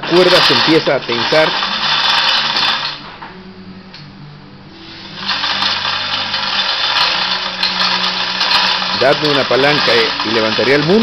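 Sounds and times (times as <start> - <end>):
hoist rattling whir: 0.0 - 3.1, 5.2 - 11.0
low steady hum: 2.8 - 8.2.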